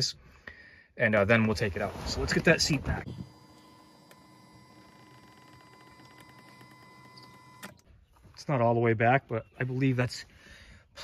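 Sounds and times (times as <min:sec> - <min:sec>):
electric seat motor whining: 0:02.9 - 0:07.8
seat motor click: 0:03.2 - 0:07.8.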